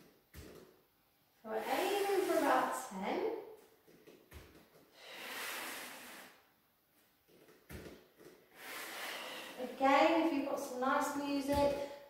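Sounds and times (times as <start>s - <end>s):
woman breathing: 4.9s - 6.4s, 8.5s - 9.8s.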